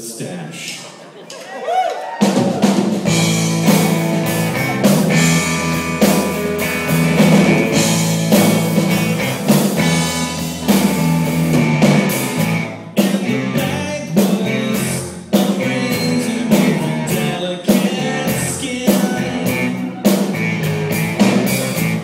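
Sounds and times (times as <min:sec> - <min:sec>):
drum hits: 0:02.2 - 0:13.3
rock band playing: 0:02.2 - 0:22.0.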